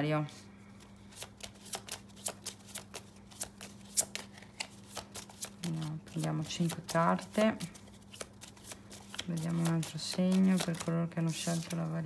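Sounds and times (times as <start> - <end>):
cards being shuffled: 0.8 - 12.0.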